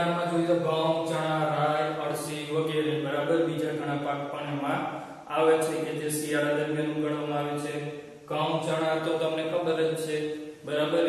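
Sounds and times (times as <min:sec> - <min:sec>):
man speaking in sing-song voice: 0:00.0 - 0:11.0.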